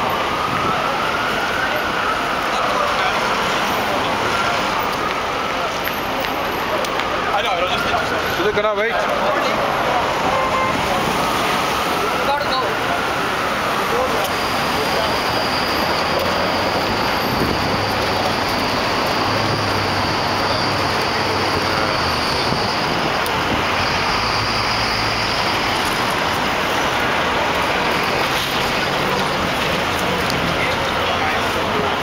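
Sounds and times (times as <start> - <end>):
busy street traffic: 0.0 - 32.0.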